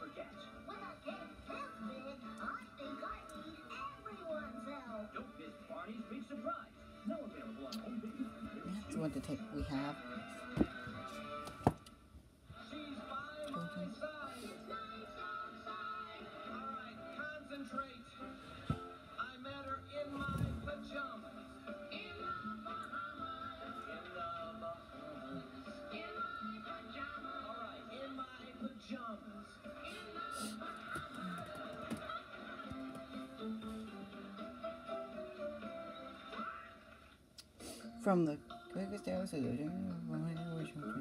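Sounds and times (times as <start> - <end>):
music with voices through speaker: 0.0 - 41.0.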